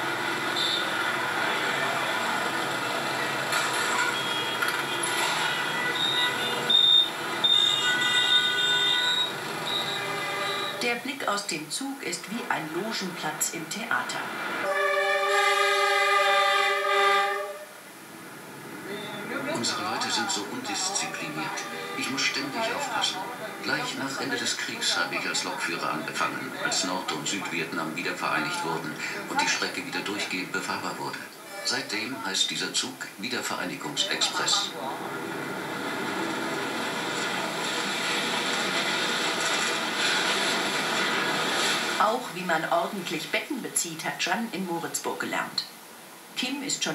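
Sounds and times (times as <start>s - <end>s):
passenger train running: 0.0s - 11.1s, 12.0s - 43.3s
train horn long blast: 0.4s - 2.6s, 4.0s - 10.8s, 14.6s - 17.8s, 21.0s - 25.3s.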